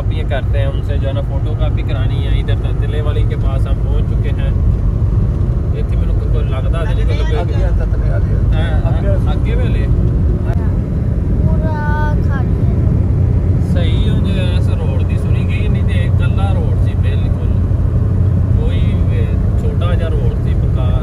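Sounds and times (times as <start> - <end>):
car engine and tyres rumbling: 0.0 - 21.0
voices talking: 11.4 - 17.6.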